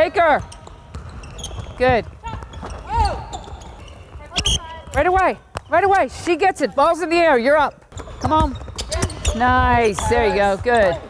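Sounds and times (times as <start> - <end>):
basketballs bouncing on hardwood: 0.0 - 11.0.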